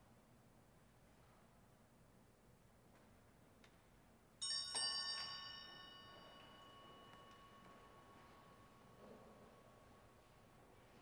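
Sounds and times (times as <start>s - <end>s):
small church bell ringing: 4.4s - 10.4s.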